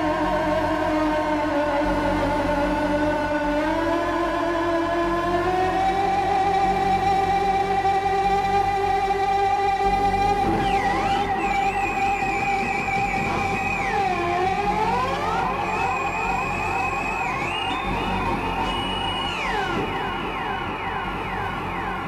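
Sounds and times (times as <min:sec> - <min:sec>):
experimental electronic music: 0:00.0 - 0:22.0.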